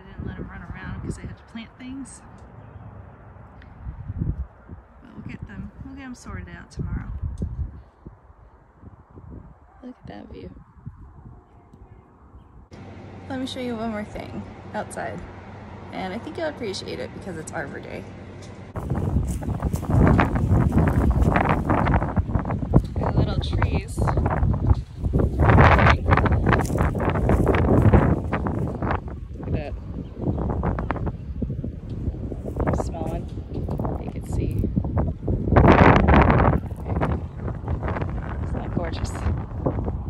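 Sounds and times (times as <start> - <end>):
wind buffeting microphone: 0.0 - 12.8, 13.4 - 40.0.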